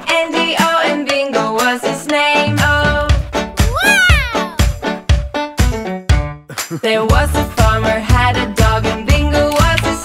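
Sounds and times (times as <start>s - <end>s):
children's song music: 0.0s - 10.0s.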